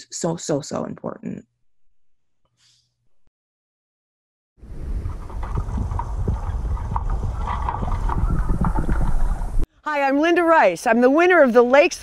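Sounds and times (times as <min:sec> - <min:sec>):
underwater rumble of moving water: 0:04.6 - 0:09.6.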